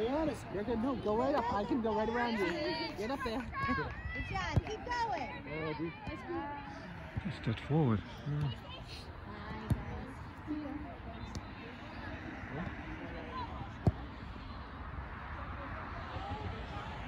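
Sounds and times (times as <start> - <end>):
distant shouts and chatter: 0.0 - 17.0
ball being kicked: 9.4 - 10.2, 13.7 - 14.2.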